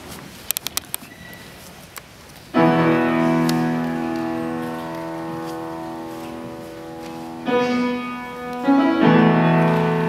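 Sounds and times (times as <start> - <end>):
grand piano chord: 2.6 - 10.0.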